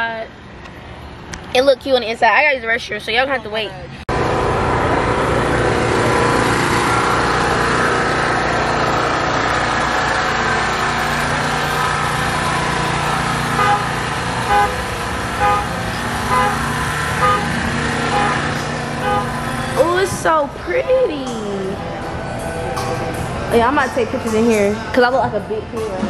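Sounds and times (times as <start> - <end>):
steady rushing drone: 2.9 - 26.0.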